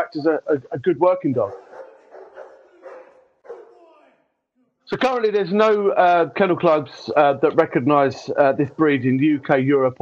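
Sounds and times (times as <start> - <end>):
dog barking faintly: 1.4 - 3.9.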